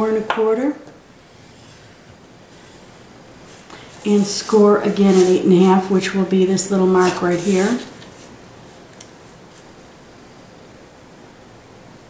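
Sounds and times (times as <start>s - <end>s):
steady hiss: 0.9s - 12.0s.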